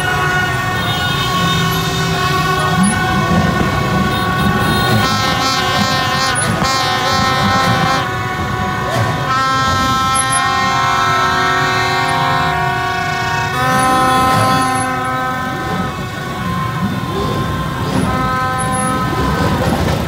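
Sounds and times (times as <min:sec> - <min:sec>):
horns and plastic trumpets blaring: 0:00.0 - 0:20.0
mass of motorbikes: 0:00.0 - 0:20.0.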